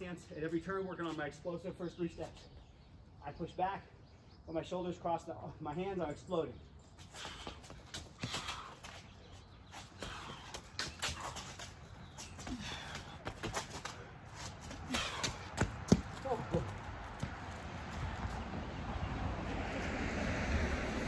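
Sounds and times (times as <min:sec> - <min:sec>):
shoes scuffing on pavement: 0:07.0 - 0:18.5.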